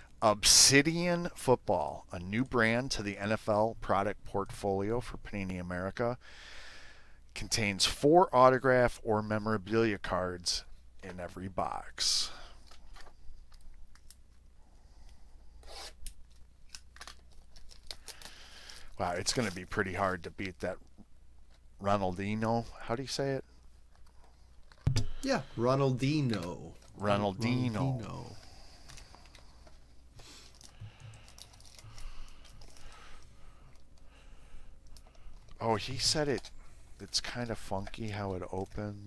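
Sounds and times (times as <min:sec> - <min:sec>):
low steady hum: 0:06.9 - 0:39.0
wrapping tearing: 0:15.6 - 0:20.0, 0:30.4 - 0:33.1.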